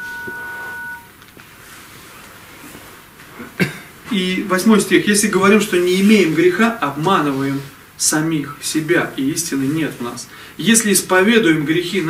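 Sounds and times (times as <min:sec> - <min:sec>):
two-tone electronic beep: 0:00.0 - 0:01.1.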